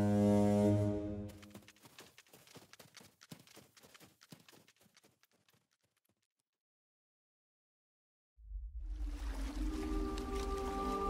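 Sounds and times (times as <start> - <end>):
deep low horn blast: 0.0 - 1.4.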